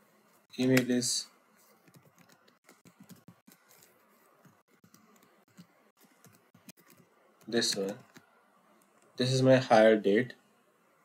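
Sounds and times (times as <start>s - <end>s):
computer keyboard typing: 1.8s - 8.3s.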